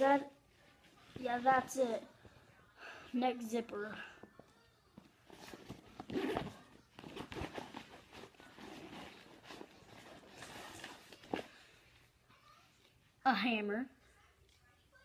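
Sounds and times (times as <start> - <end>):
rustling fabric: 0.0 - 2.1, 5.0 - 12.0
handling noises: 5.0 - 11.7
zipper: 5.3 - 11.5.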